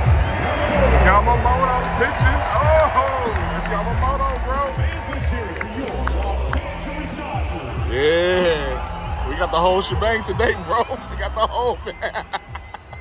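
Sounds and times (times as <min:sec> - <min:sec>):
crowd voices: 0:00.0 - 0:13.0
stadium music with heavy bass: 0:00.0 - 0:13.0.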